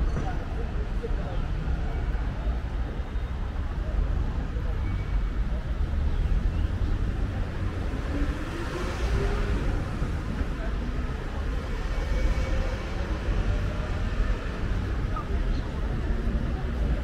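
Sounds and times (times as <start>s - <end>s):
faint voices of passers-by: 0.0s - 17.0s
low rumble of road traffic: 0.0s - 17.0s.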